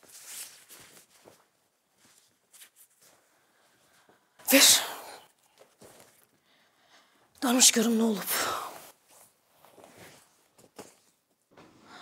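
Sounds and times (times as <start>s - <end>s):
sneeze: 4.5s - 5.2s.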